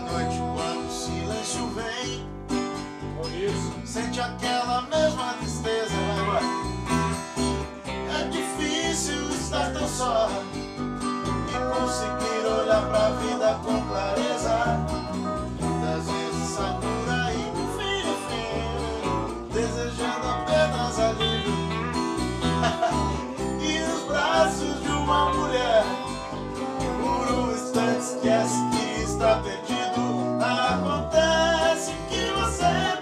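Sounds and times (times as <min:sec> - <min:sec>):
lap steel guitar sliding melody: 0:00.0 - 0:02.2, 0:05.9 - 0:33.0
country rock band playing: 0:02.5 - 0:33.0.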